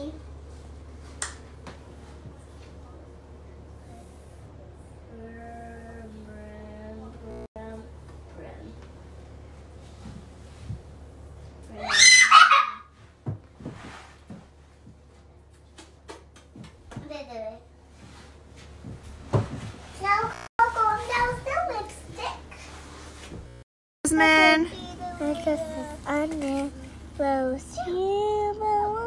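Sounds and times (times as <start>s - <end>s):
low steady hum: 0.0s - 12.0s, 17.3s - 29.0s
child squealing: 11.8s - 12.9s.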